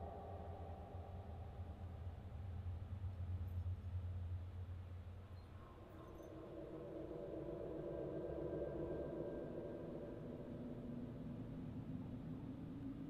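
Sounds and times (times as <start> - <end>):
low sustained drone: 0.0 - 3.2, 5.7 - 13.0.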